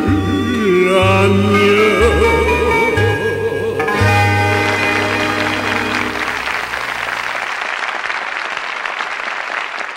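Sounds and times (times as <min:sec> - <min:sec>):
audience applauding: 0:04.3 - 0:09.9.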